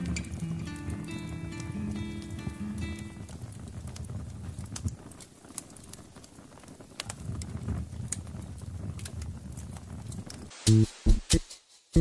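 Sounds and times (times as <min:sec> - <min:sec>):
plucked guitar notes: 0:00.0 - 0:03.2.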